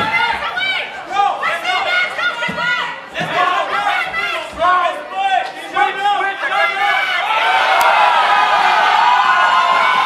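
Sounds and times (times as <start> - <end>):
crowd yelling and cheering: 0.0 - 10.0.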